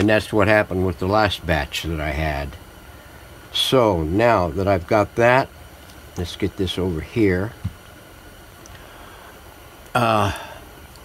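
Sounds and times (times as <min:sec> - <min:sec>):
man speaking: 0:00.0 - 0:02.6, 0:03.5 - 0:05.5, 0:06.2 - 0:07.6, 0:10.0 - 0:10.5
steady low hiss: 0:00.0 - 0:11.0.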